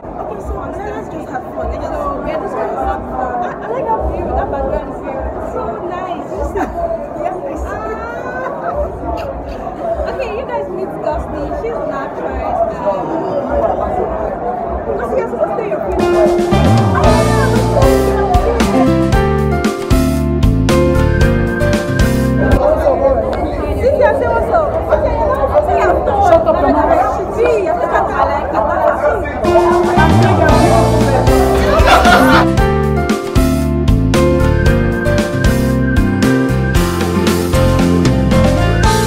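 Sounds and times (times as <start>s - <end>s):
voices talking and exclaiming: 0.0s - 19.2s, 22.4s - 32.7s
background crowd babble: 0.0s - 39.0s
held musical note: 16.0s - 22.2s, 29.4s - 36.4s
loud music with bass: 16.0s - 22.6s, 29.5s - 39.0s.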